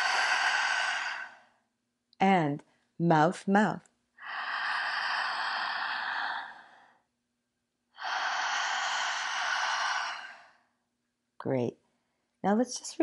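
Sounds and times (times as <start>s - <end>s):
woman breathing through mouth: 0.0s - 1.6s, 4.2s - 7.0s, 8.0s - 10.7s.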